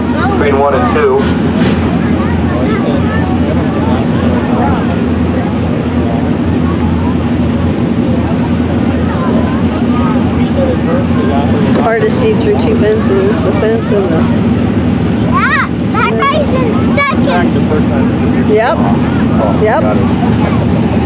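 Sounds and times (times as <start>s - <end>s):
faint voices of spectators: 0.0s - 21.0s
race car engines low drone: 0.0s - 21.0s.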